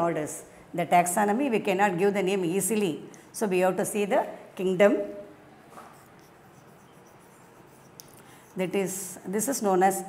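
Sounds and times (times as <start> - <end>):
chalk writing on blackboard: 5.8 - 9.2.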